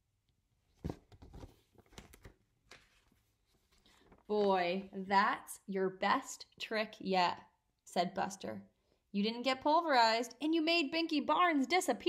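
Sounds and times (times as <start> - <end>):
book pages turning: 0.7 - 4.4.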